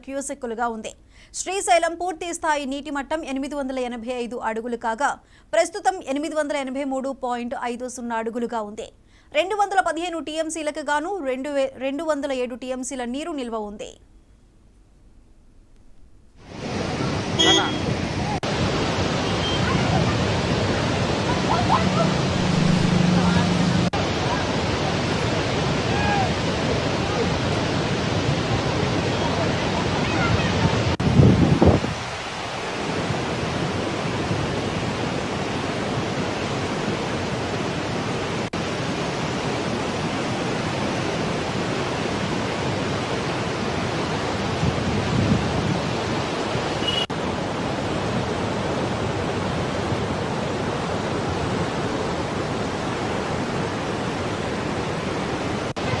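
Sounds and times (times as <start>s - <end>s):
floodwater rushing through spillway: 16.5s - 31.0s.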